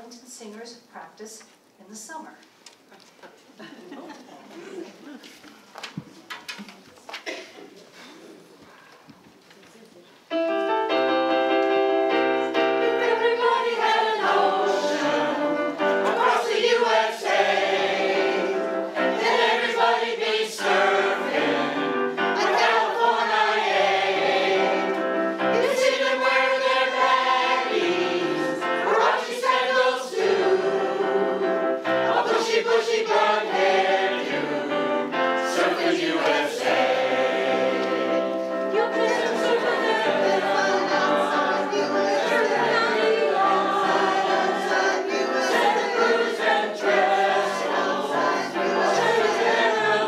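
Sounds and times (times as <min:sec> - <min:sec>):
digital piano: 0:10.3 - 0:50.0
mixed choir singing in harmony: 0:12.1 - 0:50.0.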